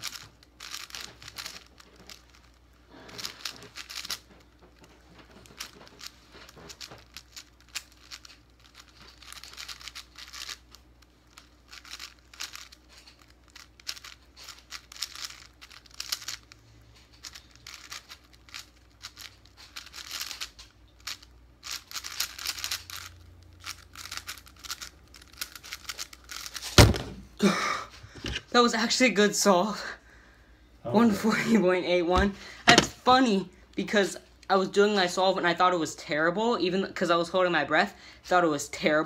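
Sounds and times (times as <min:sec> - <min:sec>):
speed cube clicking and scraping: 0:00.0 - 0:26.8.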